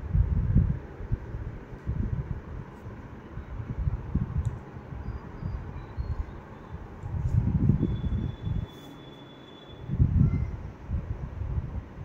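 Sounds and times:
wind buffeting microphone: 0.0 - 8.7, 9.8 - 12.0.

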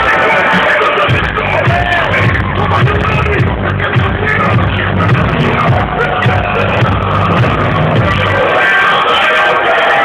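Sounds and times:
live dance music with bass beat: 0.0 - 10.0.

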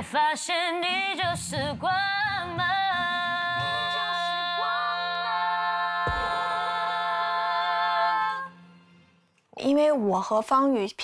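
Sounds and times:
women singing pop in harmony: 0.0 - 8.7.

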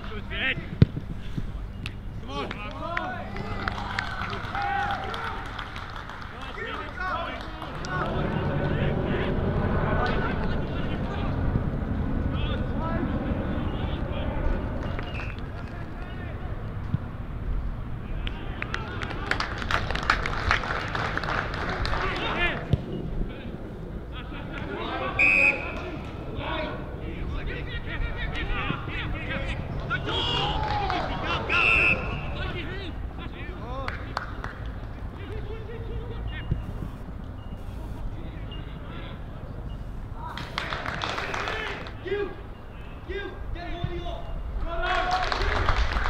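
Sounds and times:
voices calling: 0.0 - 17.2, 21.0 - 45.7
shrill whistle blast: 25.2 - 25.8, 31.5 - 32.4.

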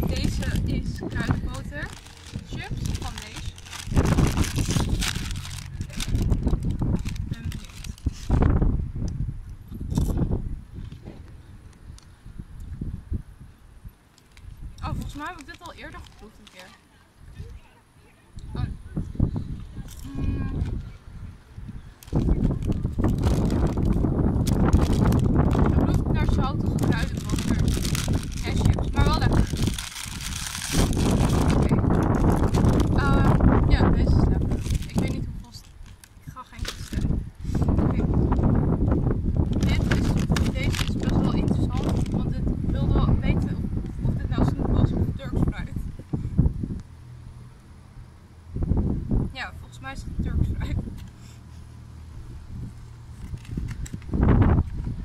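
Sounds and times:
wind buffeting microphone: 0.0 - 17.6, 18.3 - 46.9, 48.4 - 51.1, 52.1 - 55.0
crisp packet rustling: 0.1 - 8.4, 14.1 - 16.8, 22.0 - 33.4, 34.1 - 37.1, 39.4 - 42.2, 53.1 - 54.1
plastic wrapper sliding: 1.8 - 8.4, 14.1 - 16.8, 22.0 - 25.6, 26.8 - 33.0, 34.4 - 37.0, 39.4 - 41.2, 53.2 - 54.0
short vocal sound: 19.8 - 20.7.

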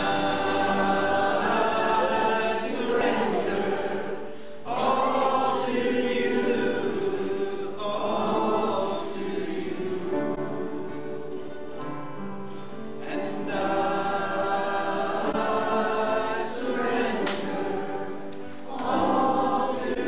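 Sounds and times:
congregation singing: 0.0 - 20.0
guitars: 0.0 - 20.0
keyboard: 0.0 - 20.0.

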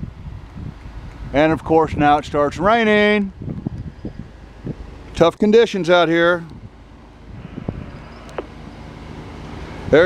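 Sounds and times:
wind on microphone: 0.0 - 5.0, 6.4 - 8.8
engine hum: 0.0 - 10.0
short falling squeak: 7.8 - 8.5.

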